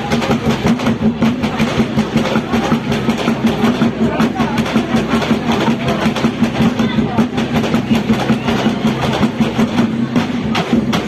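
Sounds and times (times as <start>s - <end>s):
drums playing fast beat: 0.0s - 11.0s.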